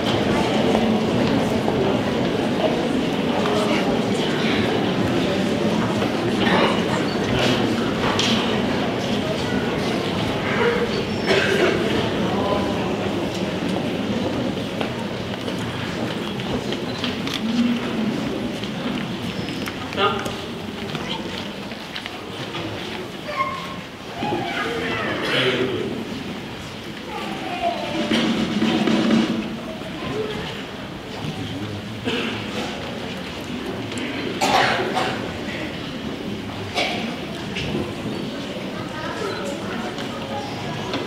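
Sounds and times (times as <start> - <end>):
crowd and children murmuring: 0.0 - 41.0
loud cough: 11.3 - 11.9, 25.2 - 25.7, 32.0 - 32.5, 34.4 - 35.3.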